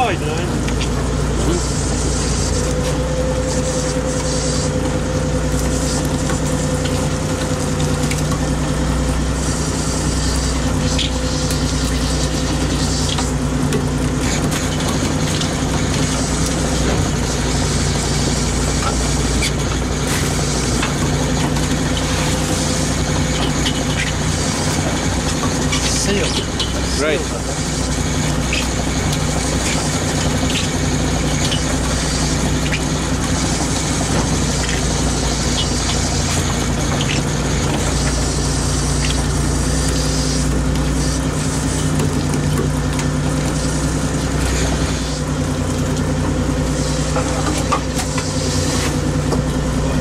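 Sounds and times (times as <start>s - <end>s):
boat engine droning: 0.0s - 50.0s.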